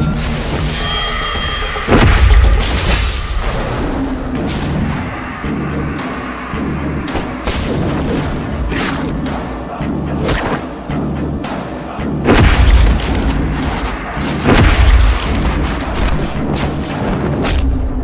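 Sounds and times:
dramatic film score: 0.0s - 18.0s
deep booming hits: 1.9s - 5.5s, 12.2s - 18.0s.

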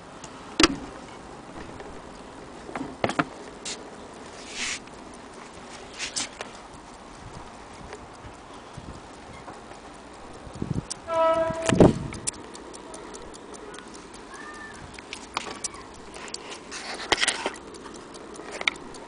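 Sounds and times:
clock ticking: 0.0s - 19.0s.

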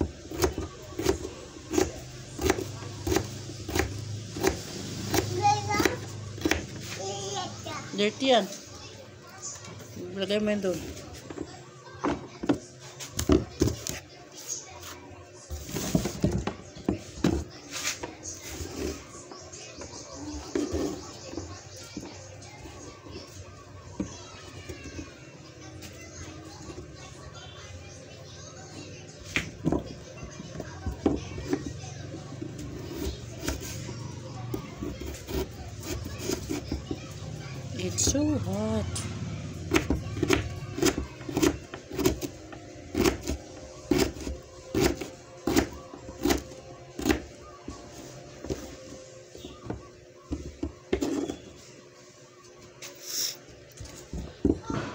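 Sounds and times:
woman talking: 7.9s - 8.6s, 10.0s - 10.9s, 37.7s - 39.0s.

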